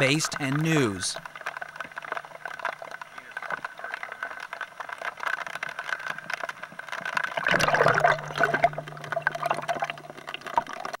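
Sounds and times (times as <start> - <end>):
gravel rattling on mesh screen: 0.0 - 11.0
water sloshing: 0.0 - 11.0
steady low hum: 7.5 - 11.0.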